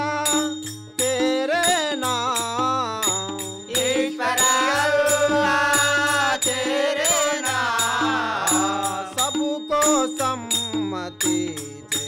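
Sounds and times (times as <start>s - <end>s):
hand cymbals jingling: 0.0s - 12.0s
harmonium: 0.0s - 12.0s
tabla beat: 0.0s - 12.0s.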